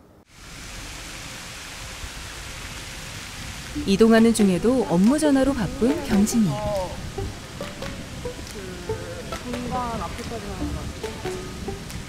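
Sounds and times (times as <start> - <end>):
fountain jets splashing water: 0.3 - 12.0.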